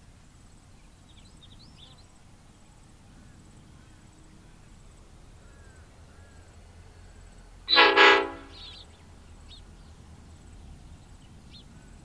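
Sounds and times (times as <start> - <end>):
faint bird chirps: 0.7 - 12.0
diesel locomotive horn blasts: 7.7 - 8.8.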